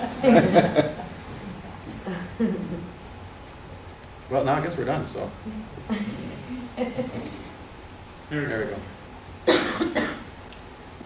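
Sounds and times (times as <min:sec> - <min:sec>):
person coughing: 0:09.5 - 0:10.3.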